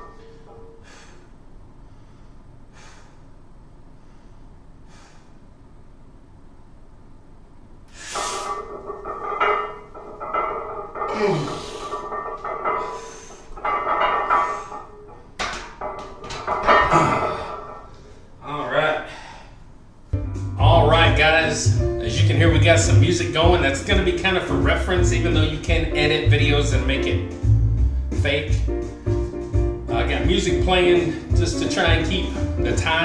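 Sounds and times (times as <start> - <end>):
man breathing loudly: 0.5 - 5.5, 19.0 - 19.7
man grunting with strain: 11.1 - 11.8
music playing: 20.2 - 33.0.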